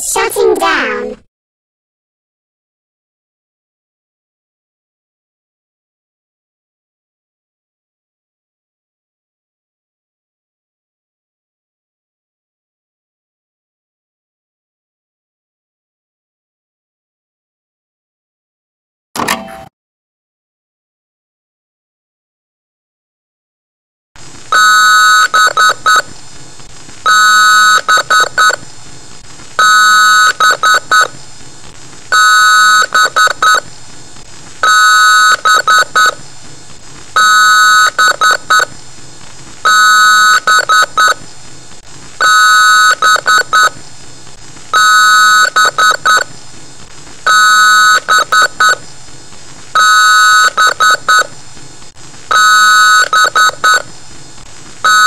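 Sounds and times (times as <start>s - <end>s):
electronic alarm beeping: 24.6s - 26.0s, 27.1s - 28.6s, 29.6s - 31.1s, 34.6s - 36.2s, 39.7s - 41.2s, 42.2s - 43.7s, 44.8s - 46.3s, 49.8s - 51.3s.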